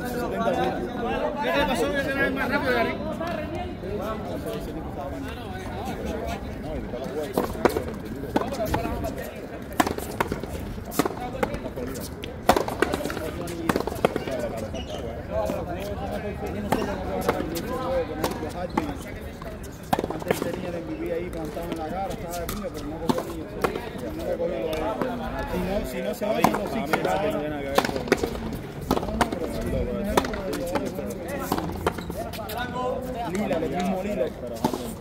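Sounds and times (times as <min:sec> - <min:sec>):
people talking: 0:00.0 - 0:35.0.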